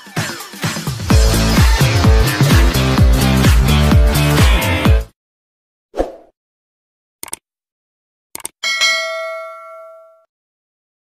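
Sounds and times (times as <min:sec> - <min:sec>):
bell chime ding: 0:08.6 - 0:10.3.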